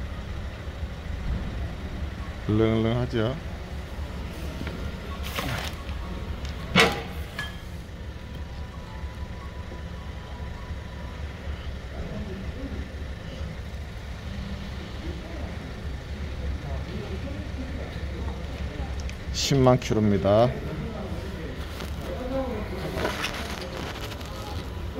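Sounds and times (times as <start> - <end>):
workshop hum: 0.0 - 24.9.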